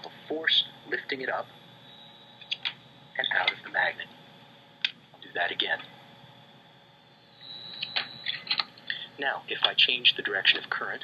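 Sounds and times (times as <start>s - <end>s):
faint high whine: 0.0s - 11.0s
power supply hum: 0.0s - 11.0s.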